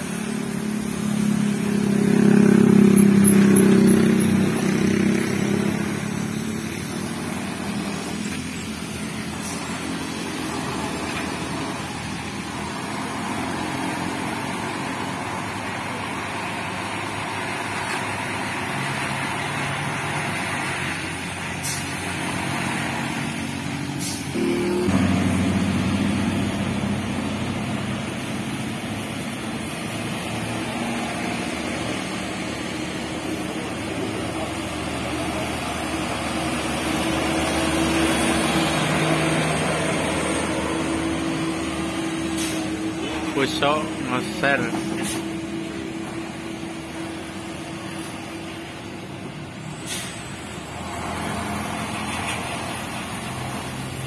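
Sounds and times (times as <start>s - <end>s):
cars and motorcycles passing: 0.0s - 54.0s
diesel truck engine under load: 0.0s - 54.0s.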